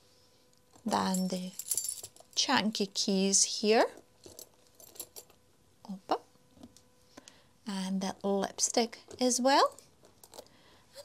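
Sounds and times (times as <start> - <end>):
keys jingling: 1.0 - 2.4, 4.2 - 5.4.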